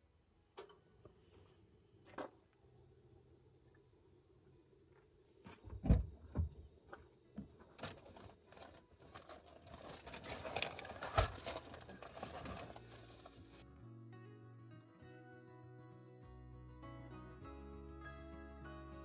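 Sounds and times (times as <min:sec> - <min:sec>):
knocks and thumps: 0:05.5 - 0:06.7
dense rustling: 0:07.9 - 0:13.6
background music: 0:12.8 - 0:19.0.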